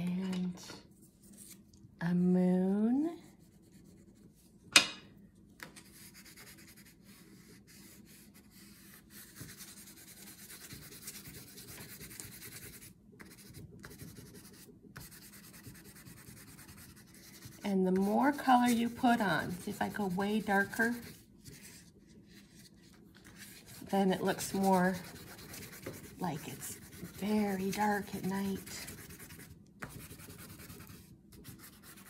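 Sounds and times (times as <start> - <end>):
crayon rubbing on paper: 5.9 - 21.8, 23.4 - 32.0.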